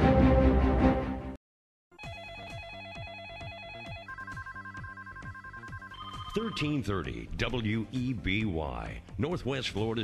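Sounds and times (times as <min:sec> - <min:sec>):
music: 0:00.0 - 0:01.4, 0:02.0 - 0:10.0
electronic telephone ring: 0:02.0 - 0:06.8.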